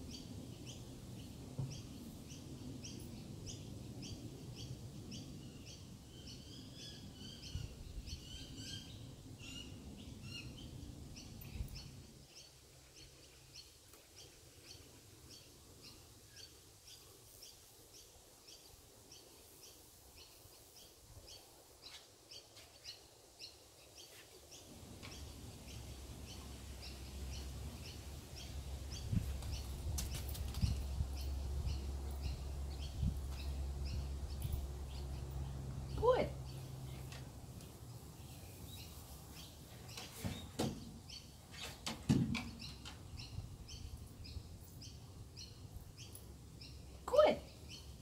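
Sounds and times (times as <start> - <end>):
birds chirping: 0.1 - 37.2.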